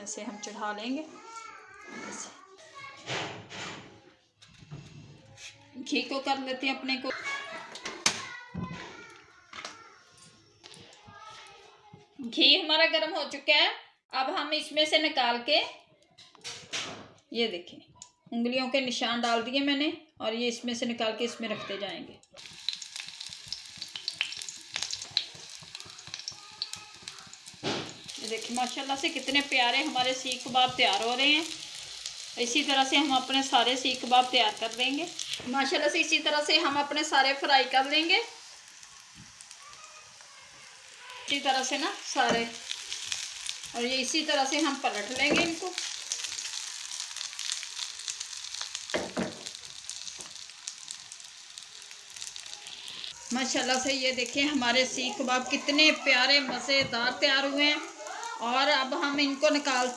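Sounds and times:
meat sizzling in a pan: 22.4 - 59.9.

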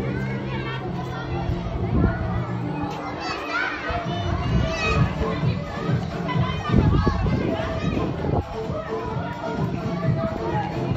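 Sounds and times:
children playing and shouting: 0.0 - 10.9.

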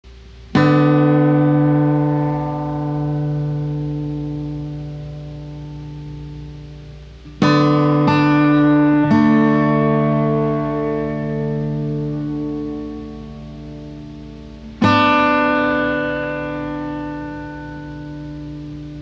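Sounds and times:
blues guitar chords: 0.0 - 19.0.

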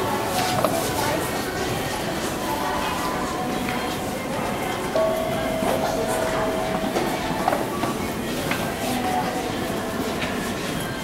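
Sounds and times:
elevator arrival chime: 4.9 - 8.2.

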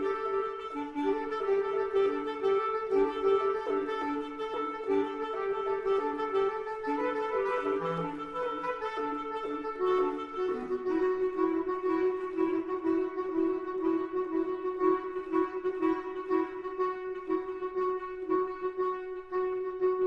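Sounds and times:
bass clarinet duet: 0.0 - 20.0.

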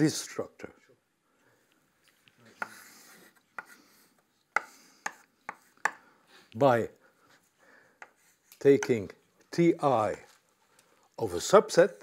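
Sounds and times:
chalk scraping on blackboard: 2.5 - 6.0
chalk tapping on blackboard: 2.6 - 3.8, 4.5 - 6.0, 8.0 - 9.0.

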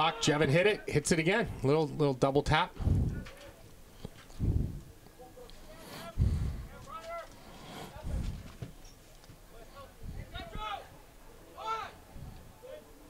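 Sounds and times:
distant players shouting: 0.0 - 1.0, 10.2 - 13.0
low dull thumps: 4.4 - 4.9.

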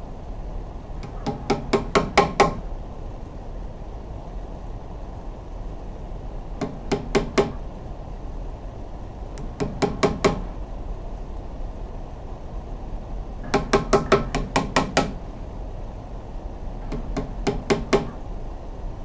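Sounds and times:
hammer driving nails into wood: 1.0 - 2.6, 6.6 - 7.6, 9.4 - 10.5, 13.4 - 15.2, 16.9 - 18.2.

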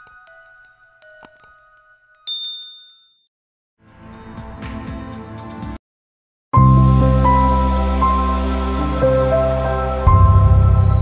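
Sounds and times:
bright ding: 2.2 - 3.3
music: 3.8 - 5.8, 6.6 - 11.0.

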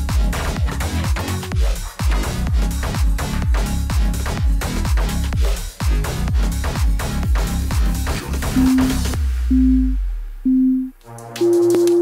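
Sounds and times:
electronic backing music: 0.0 - 12.0
bass note: 8.4 - 12.0
countdown timer beeping: 8.5 - 12.0.

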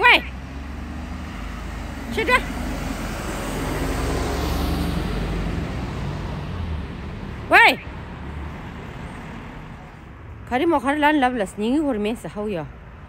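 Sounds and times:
vehicle passing on street: 0.0 - 13.0.

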